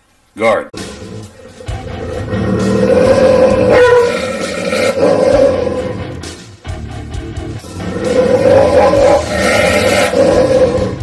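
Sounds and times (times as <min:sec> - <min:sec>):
music: 0:00.6 - 0:11.0
dog growling and snarling: 0:00.8 - 0:06.2, 0:07.7 - 0:11.0.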